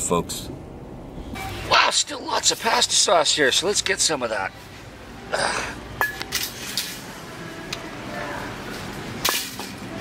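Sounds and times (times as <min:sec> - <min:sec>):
supermarket background hum: 0:00.0 - 0:10.0.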